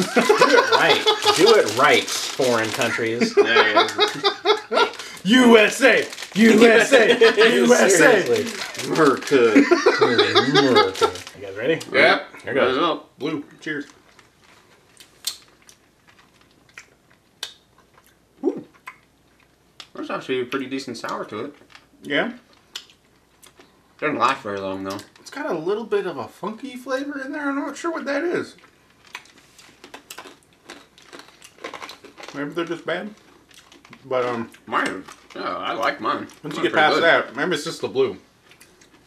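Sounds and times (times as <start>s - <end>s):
mouths chewing candy: 0.0s - 11.9s, 13.6s - 25.4s, 28.6s - 37.1s.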